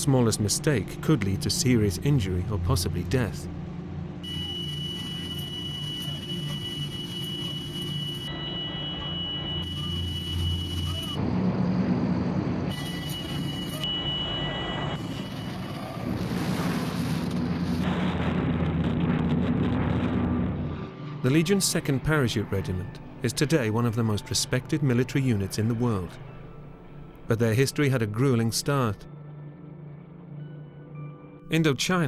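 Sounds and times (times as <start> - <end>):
propeller engines droning: 0.0 - 27.4.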